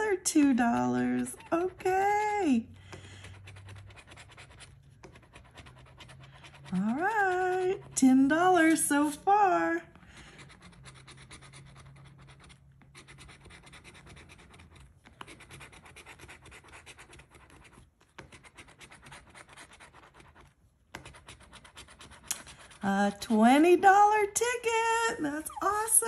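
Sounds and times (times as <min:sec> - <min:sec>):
coin scratching lottery ticket: 0:00.0 - 0:23.2.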